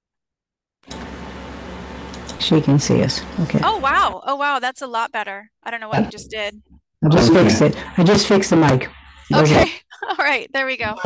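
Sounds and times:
low electrical hum: 0.9s - 5.1s, 5.7s - 11.0s.

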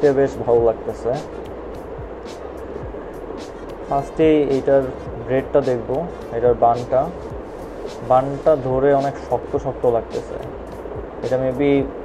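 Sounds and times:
background music with light beat: 0.0s - 12.0s
low hum: 0.0s - 12.0s.

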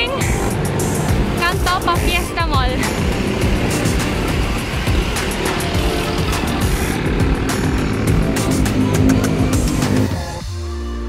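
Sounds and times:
background music: 0.0s - 11.0s
bicycle road noise: 0.0s - 11.0s
traffic: 0.0s - 11.0s.

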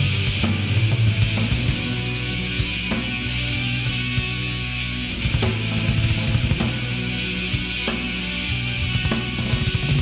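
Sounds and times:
bass guitar low sustained notes: 0.0s - 10.0s
distorted electric guitar: 0.0s - 10.0s.

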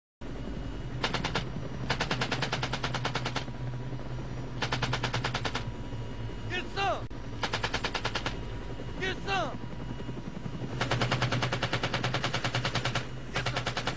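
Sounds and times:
machine gun bursts: 1.0s - 3.4s, 4.6s - 5.6s, 7.4s - 8.4s, 10.8s - 13.9s
person shouting: 6.5s - 7.1s, 9.0s - 9.6s.

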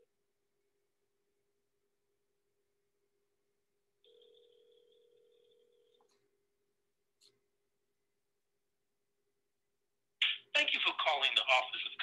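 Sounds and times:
telephone ringback tone: 4.1s - 6.0s.

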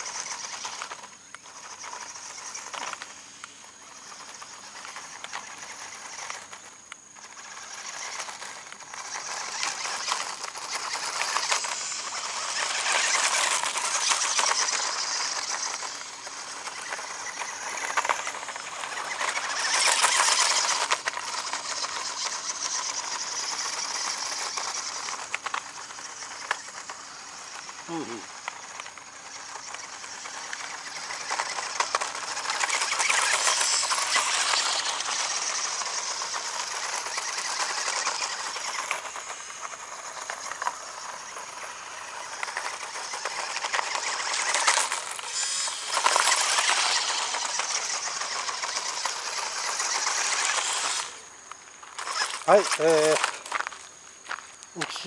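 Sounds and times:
small electric motor whining: 0.0s - 55.0s
tyres crunching on gravel: 0.0s - 55.0s.

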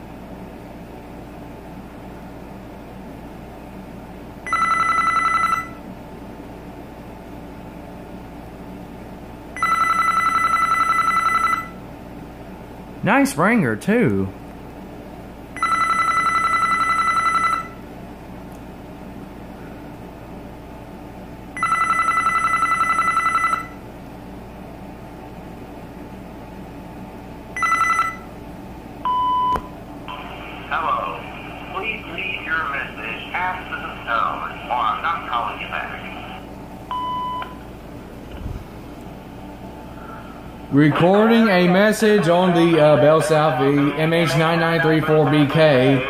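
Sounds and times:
phone ringer warbling: 4.5s - 5.8s, 9.6s - 11.8s, 15.6s - 17.8s, 21.6s - 23.8s, 27.6s - 28.3s
recorded greeting over phone line: 4.5s - 5.8s, 9.6s - 11.8s, 15.6s - 17.8s, 30.1s - 37.5s, 40.7s - 46.0s
answering machine beep: 29.1s - 29.7s, 36.9s - 37.6s.

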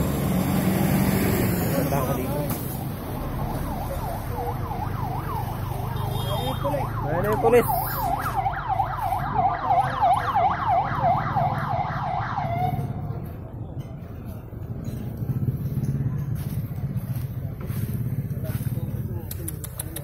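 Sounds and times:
low rumble of traffic: 0.0s - 20.0s
emergency siren yelping: 2.2s - 13.0s.

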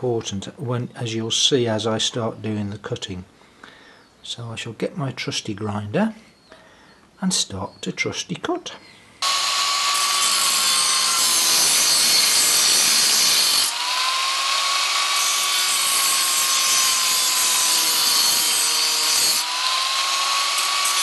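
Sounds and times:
angle grinder cutting steel pipe: 9.2s - 21.0s.

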